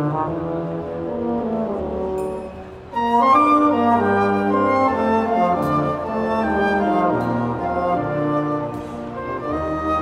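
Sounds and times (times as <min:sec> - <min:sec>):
low brass: 0:00.0 - 0:10.0
wind band playing slow chords: 0:00.0 - 0:10.0.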